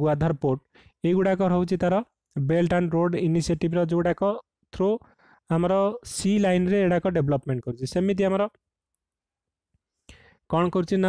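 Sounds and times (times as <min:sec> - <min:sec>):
man speaking: 0:00.0 - 0:08.6, 0:10.5 - 0:11.0.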